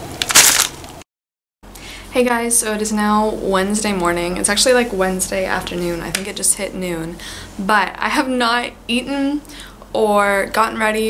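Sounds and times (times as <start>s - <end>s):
paper wrapping crinkling and tearing: 0.2s - 0.8s.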